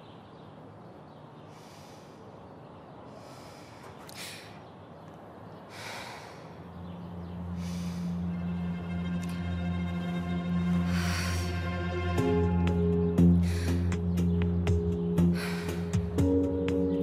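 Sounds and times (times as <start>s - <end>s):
woman breathing: 1.5s - 4.7s, 5.6s - 6.8s, 7.5s - 8.5s, 10.6s - 12.0s, 13.3s - 14.1s, 15.2s - 16.2s
low sustained music: 6.7s - 17.0s.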